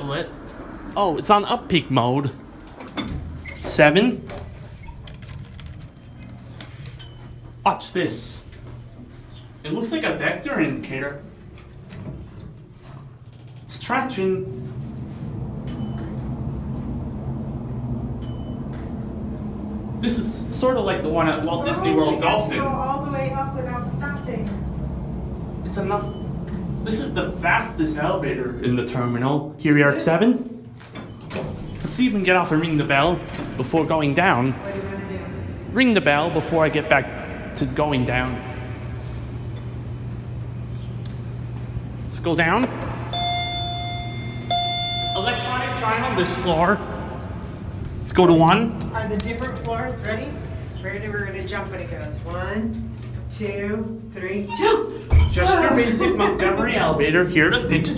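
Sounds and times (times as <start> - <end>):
elevator car humming: 0.0 - 29.7, 30.7 - 57.9
elevator chime dings: 15.6 - 16.6, 18.2 - 19.2, 21.2 - 22.2, 24.0 - 24.8, 25.8 - 26.6, 38.3 - 47.4
short high tones: 36.5 - 47.4.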